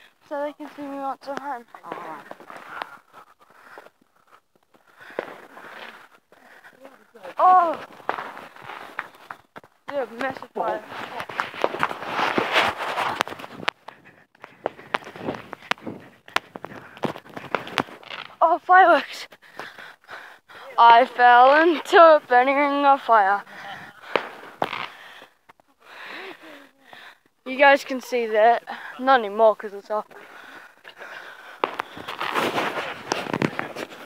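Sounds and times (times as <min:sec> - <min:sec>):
irregular thuds: 0:00.6 - 0:18.4
footsteps: 0:00.6 - 0:20.0, 0:20.8 - 0:26.3, 0:29.5 - 0:34.0
faint firework pops: 0:07.7 - 0:18.3, 0:24.1 - 0:25.3, 0:31.6 - 0:33.9
fireworks bangs with hiss: 0:24.1 - 0:25.0, 0:31.6 - 0:33.5.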